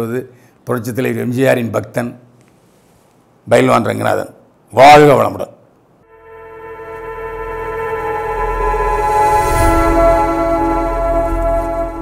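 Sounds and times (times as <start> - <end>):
synthesized chord: 6.0 - 12.0.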